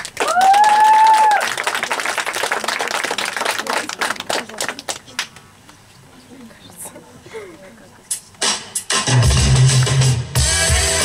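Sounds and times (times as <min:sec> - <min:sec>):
backing track music with heavy bass: 0:08.4 - 0:11.0.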